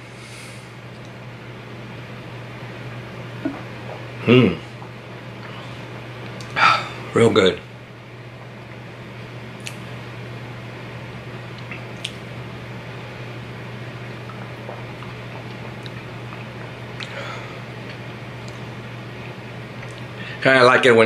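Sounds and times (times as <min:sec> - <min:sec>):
steady low hum: 0:00.0 - 0:21.0
sipping and swallowing: 0:03.3 - 0:07.0, 0:11.5 - 0:12.3, 0:14.0 - 0:20.2.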